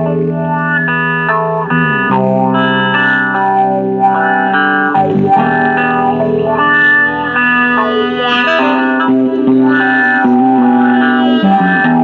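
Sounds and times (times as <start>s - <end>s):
guitar chords with effects: 0.0s - 12.0s.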